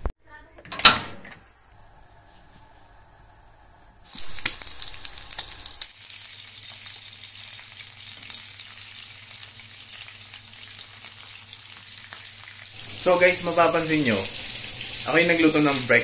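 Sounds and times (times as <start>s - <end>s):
fish frying with steady sizzle: 4.0s - 16.0s
egg frying with crackling pops: 4.1s - 16.0s.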